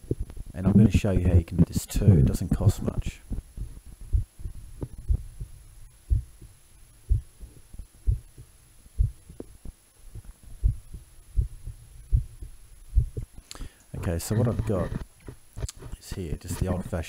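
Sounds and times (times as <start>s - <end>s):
heartbeat thumps: 0.0s - 0.8s, 2.1s - 13.4s.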